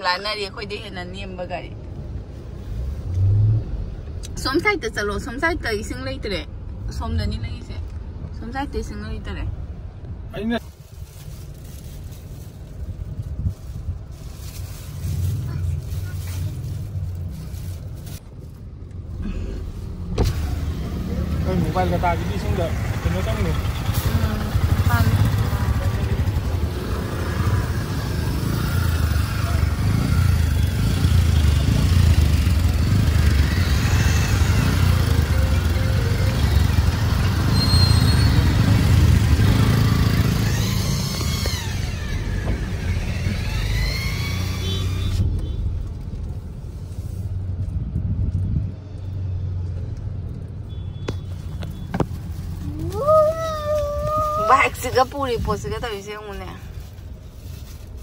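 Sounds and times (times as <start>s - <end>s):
traffic engines rumbling: 0.0s - 58.0s
voices: 52.6s - 56.6s.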